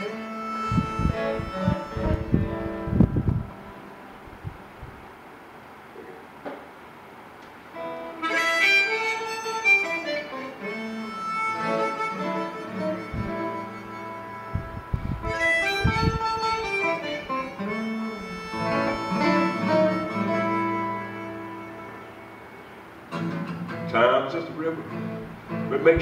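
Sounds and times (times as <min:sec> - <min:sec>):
acoustic guitar strums: 0:00.0 - 0:04.0, 0:07.8 - 0:26.0
harmonica playing held notes: 0:00.0 - 0:04.0, 0:07.8 - 0:23.9.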